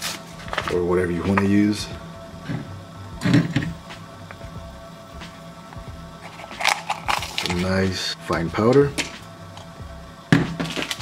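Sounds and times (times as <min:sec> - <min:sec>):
quiet background music: 0:00.0 - 0:11.0
packet rustling: 0:06.3 - 0:07.8.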